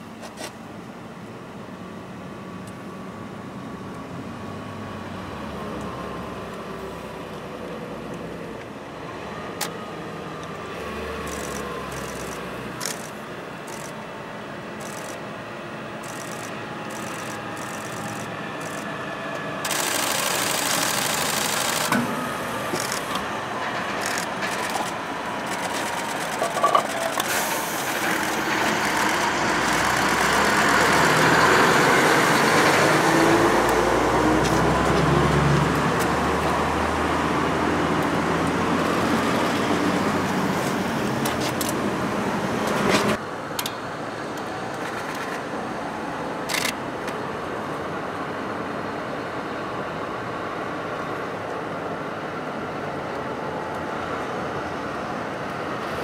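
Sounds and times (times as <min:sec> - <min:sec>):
cars and vans passing: 0:00.0 - 0:56.0
heavy truck driving past: 0:21.9 - 0:26.1, 0:27.2 - 0:41.2.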